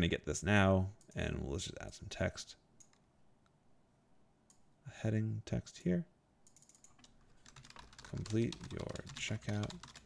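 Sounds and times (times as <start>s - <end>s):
faint keyboard typing: 2.8s - 3.1s, 6.4s - 10.0s.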